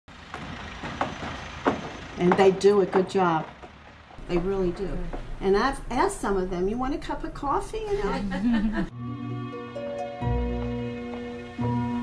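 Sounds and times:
heavy machinery running: 0:00.1 - 0:05.9.

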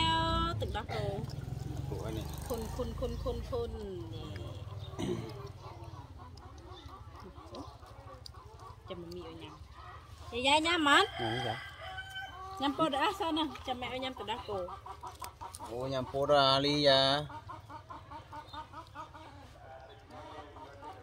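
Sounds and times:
chickens clucking: 0:00.0 - 0:21.0
rooster crowing: 0:10.8 - 0:12.7.

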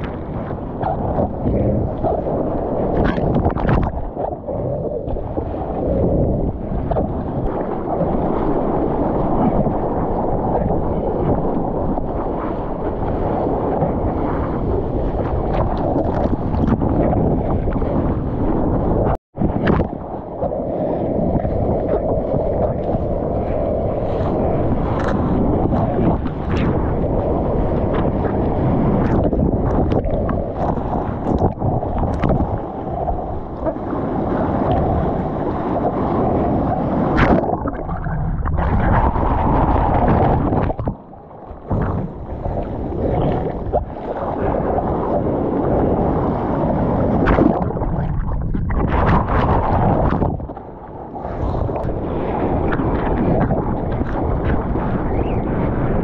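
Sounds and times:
water sloshing and splashing: 0:00.0 - 0:55.0
wind buffeting microphone: 0:00.0 - 0:56.0.

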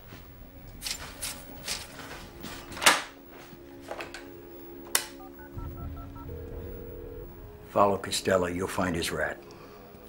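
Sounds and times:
phone ringing tone: 0:05.1 - 0:07.7
phone keypad beeps: 0:05.2 - 0:07.0.

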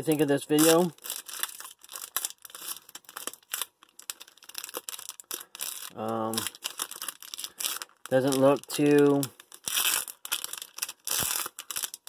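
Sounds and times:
wrapper crinkling and tearing: 0:00.0 - 0:12.0.

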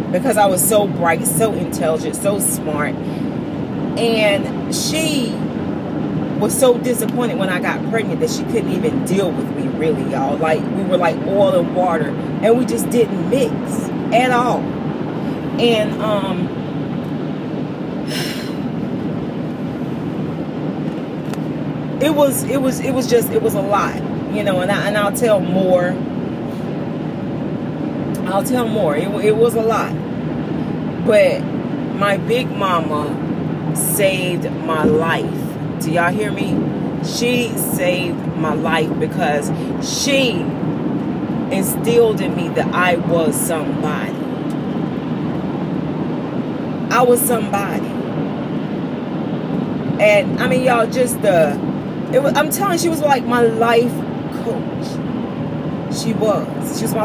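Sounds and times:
woman's voice: 0:00.0 - 0:03.2, 0:04.0 - 0:05.5, 0:06.4 - 0:14.7, 0:15.6 - 0:16.5, 0:18.1 - 0:18.6, 0:22.0 - 0:26.0, 0:28.2 - 0:30.0, 0:31.0 - 0:40.6, 0:41.5 - 0:44.3, 0:46.9 - 0:48.0, 0:50.0 - 0:55.0, 0:55.9 - 0:57.0
car road and engine noise: 0:00.0 - 0:57.0.

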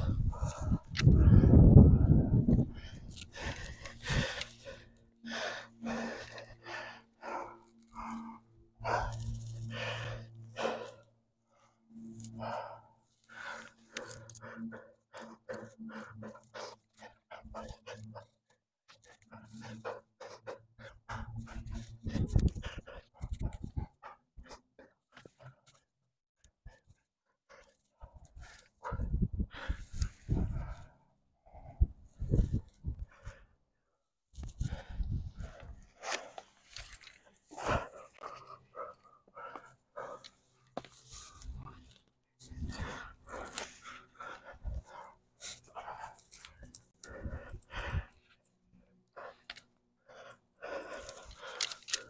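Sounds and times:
wind rumble on microphone: 0:00.0 - 0:04.4, 0:21.1 - 0:24.0, 0:28.1 - 0:30.9, 0:31.5 - 0:33.4, 0:34.4 - 0:35.9, 0:42.4 - 0:43.5, 0:47.1 - 0:48.2
person breathing hard: 0:00.0 - 0:52.0
animal panting and whining: 0:13.9 - 0:25.8.

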